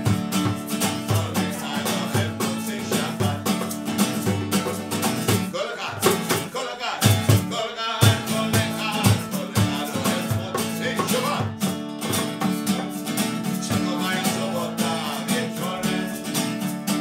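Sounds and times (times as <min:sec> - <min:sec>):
hand clapping: 0:00.0 - 0:07.4, 0:08.0 - 0:14.4
acoustic guitar strumming: 0:00.0 - 0:17.0
man singing: 0:00.8 - 0:11.7, 0:12.7 - 0:17.0.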